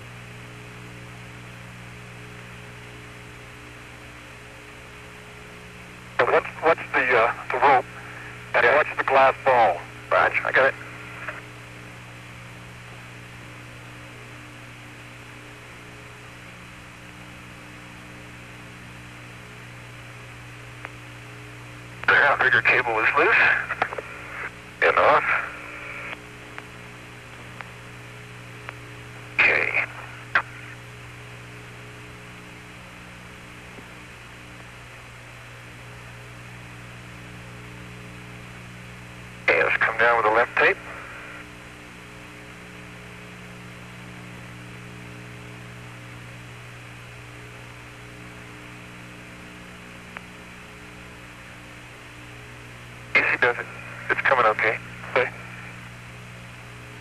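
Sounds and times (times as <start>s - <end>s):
radio hum and hiss: 0.0s - 57.0s
radio static burst: 6.2s - 11.5s, 22.0s - 26.2s, 29.3s - 30.9s, 39.4s - 41.5s, 53.2s - 55.8s.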